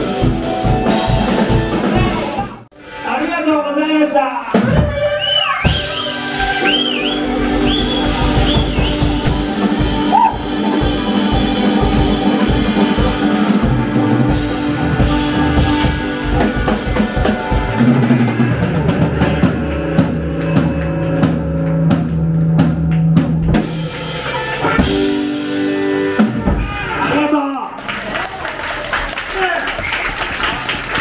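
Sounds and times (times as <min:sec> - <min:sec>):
live rock band playing: 0:00.0 - 0:27.2
high whistle-like tones: 0:05.0 - 0:09.1
drum kit strikes: 0:07.4 - 0:25.6.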